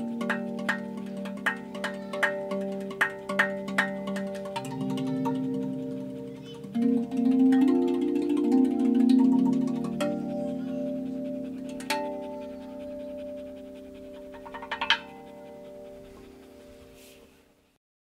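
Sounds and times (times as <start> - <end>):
steel tongue drum notes ringing: 0.0 - 17.1.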